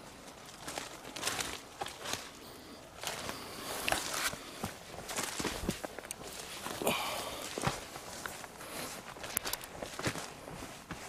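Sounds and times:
footsteps on forest floor: 0:00.0 - 0:11.0.

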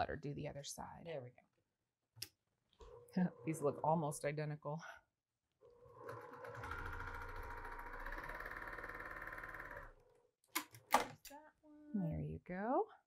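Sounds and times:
electric sewing machine stitching: 0:05.6 - 0:10.2.

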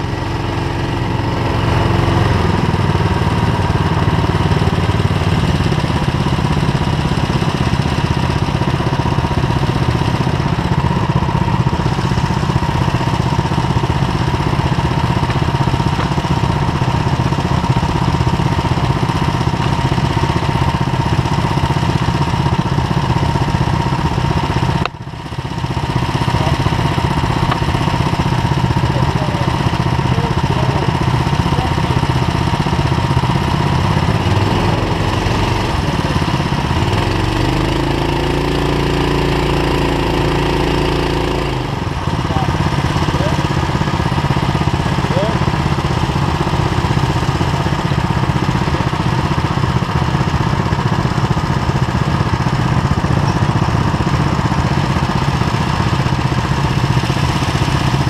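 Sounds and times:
go-kart engine idling: 0:00.0 - 0:58.0.

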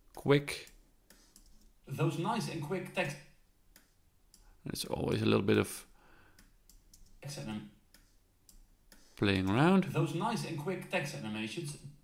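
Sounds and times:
computer mouse clicks: 0:00.1 - 0:01.7, 0:03.7 - 0:04.5, 0:06.3 - 0:07.2.

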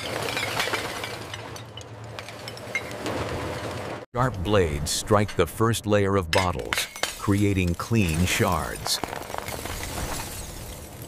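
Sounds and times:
glass bottles clinking and breaking: 0:00.0 - 0:03.0, 0:06.3 - 0:11.0
sharp cracks of glass: 0:06.7 - 0:11.0.

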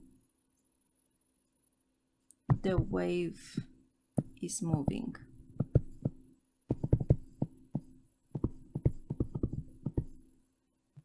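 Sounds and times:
stylus clicking on a tablet: 0:02.3 - 0:10.2.

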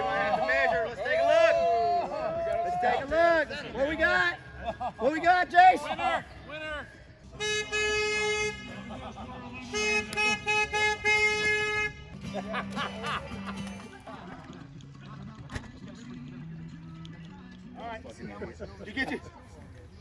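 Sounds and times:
horn tooting: 0:07.3 - 0:13.8.

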